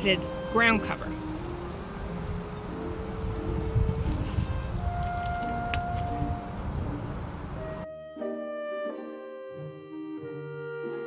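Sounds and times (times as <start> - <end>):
wind buffeting microphone: 0.0 - 7.9.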